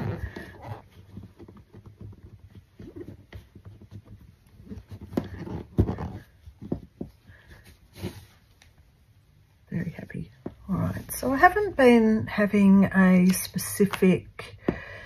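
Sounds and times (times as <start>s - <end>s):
fabric rustling: 0.0s - 12.2s.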